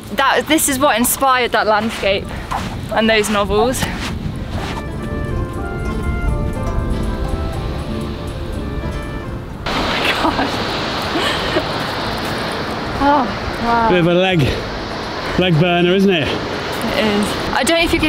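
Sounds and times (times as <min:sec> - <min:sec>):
wind and surf rushing: 0:00.0 - 0:18.0
background music sustained notes: 0:00.6 - 0:16.0.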